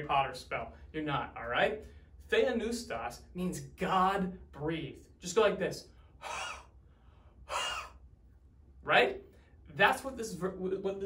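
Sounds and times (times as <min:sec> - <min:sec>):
man breathing out hard: 0:06.0 - 0:08.0.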